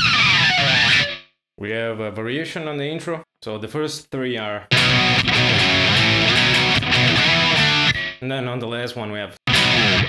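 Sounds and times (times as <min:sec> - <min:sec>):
distorted electric guitar chord riff: 0:00.0 - 0:01.2, 0:04.7 - 0:08.2, 0:09.5 - 0:10.0.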